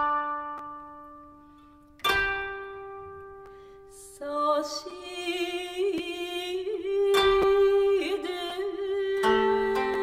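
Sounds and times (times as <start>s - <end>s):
koto string plucked: 0.0s - 3.5s, 6.6s - 10.0s.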